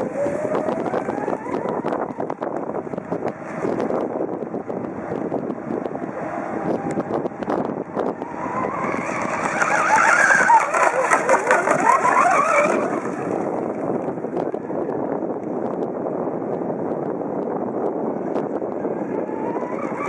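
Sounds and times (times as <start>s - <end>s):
hull skipping over water: 0.0s - 14.8s, 18.1s - 20.0s
model speedboat motor whine: 0.0s - 15.8s, 18.0s - 20.0s
wind buffeting microphone: 0.0s - 20.0s.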